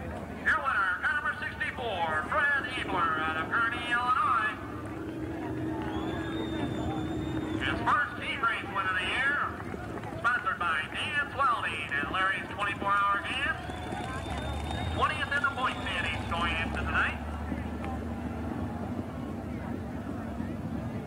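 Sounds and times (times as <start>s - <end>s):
race car engines racing past: 0.0s - 21.0s.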